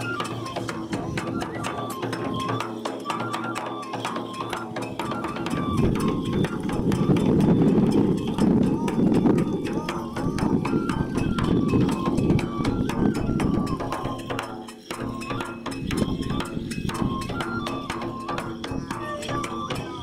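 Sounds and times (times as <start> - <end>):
high flute melody: 0.0 - 20.0
taiko drum strokes: 4.6 - 20.0.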